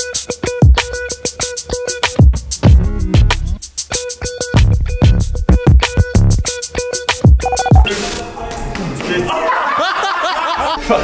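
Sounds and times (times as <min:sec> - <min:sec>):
men laughing: 0:09.2 - 0:11.0.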